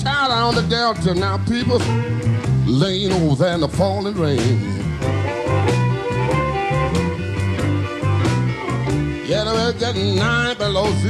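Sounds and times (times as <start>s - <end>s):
electric blues band playing: 0.0s - 11.0s.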